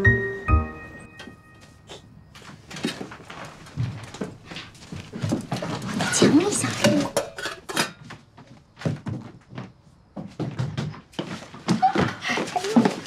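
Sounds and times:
objects knocking and clattering: 2.4 - 13.0
metal cooking pot clatter: 6.0 - 8.0.

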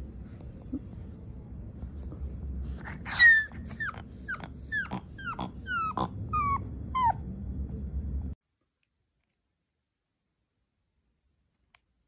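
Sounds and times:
puppy whimpering: 2.6 - 7.2.

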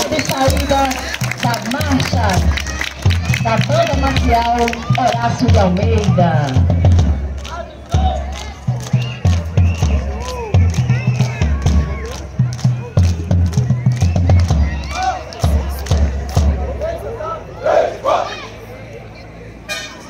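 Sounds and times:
voices: 0.0 - 20.0.

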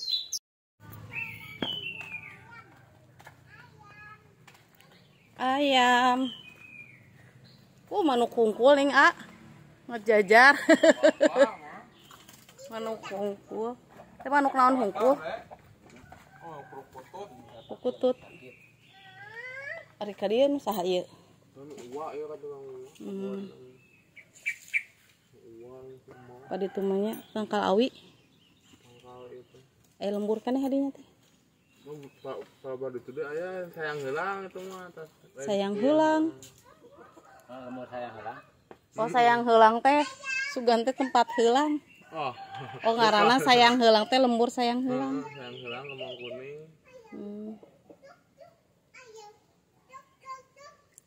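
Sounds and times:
small bird chirping: 0.0 - 2.7, 3.4 - 51.0
high chirping bird calls: 0.0 - 2.8, 4.8 - 13.6, 16.3 - 19.7, 23.0 - 26.0, 40.4 - 47.3.

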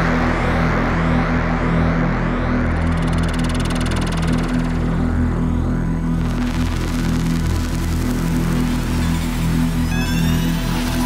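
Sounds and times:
filtered high synth texture: 8.7 - 11.0.

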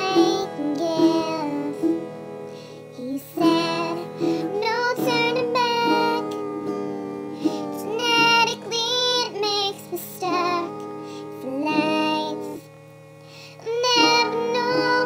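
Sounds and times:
person singing: 0.0 - 2.0, 2.8 - 12.6, 13.6 - 15.0.

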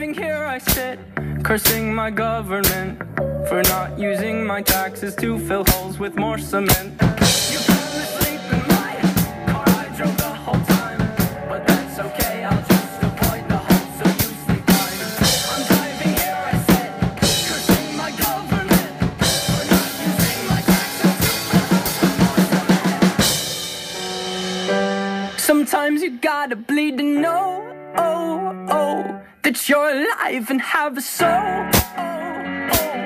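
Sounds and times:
fast acoustic drumming: 4.7 - 4.9, 5.6 - 5.9, 6.7 - 25.8.

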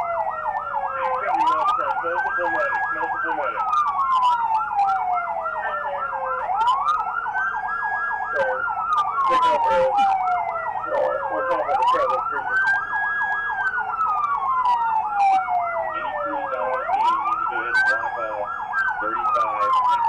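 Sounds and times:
police siren wailing: 0.0 - 20.0
police siren yelping: 0.0 - 20.0
faint voices: 0.8 - 3.7, 8.2 - 12.9, 14.1 - 20.0.

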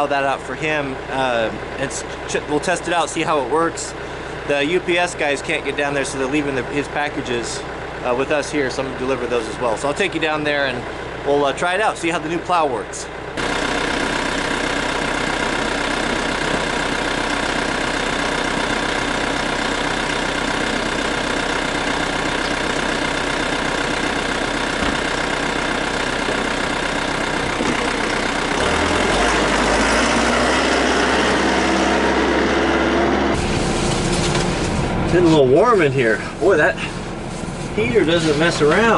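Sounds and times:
diesel tractor engine idling: 0.0 - 38.9.

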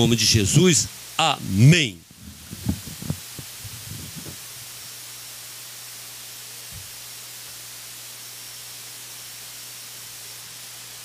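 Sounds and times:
microphone electrical hum and hiss: 0.0 - 11.0
microphone handling knocks: 2.2 - 4.4.

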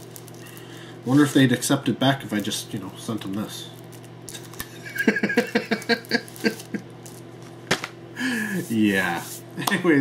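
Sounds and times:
man laughing: 4.6 - 6.9.

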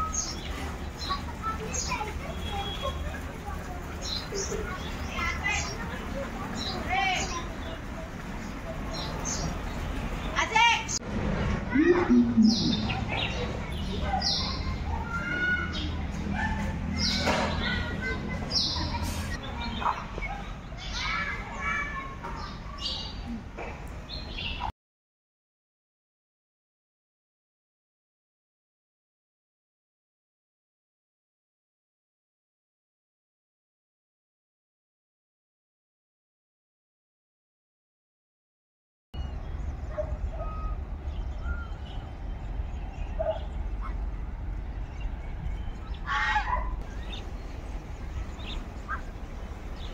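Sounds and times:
steady background noise: 0.0 - 24.7, 39.2 - 49.9
children calling out: 11.5 - 23.5
steady low rumble: 11.7 - 13.2.

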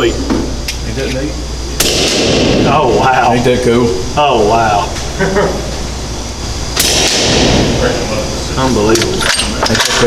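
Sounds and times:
hissing echo: 1.6 - 8.6
suppressed rifle shot: 1.8 - 2.6, 6.8 - 7.6.

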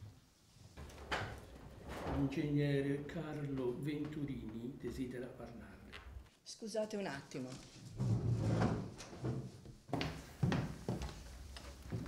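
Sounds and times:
wooden furniture scraping and knocking: 7.8 - 11.2
chair pushed back from desk: 7.9 - 9.5.

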